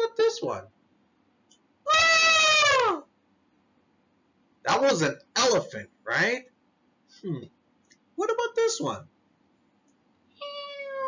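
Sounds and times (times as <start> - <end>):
man imitating elephant trumpet: 1.9 - 3.1.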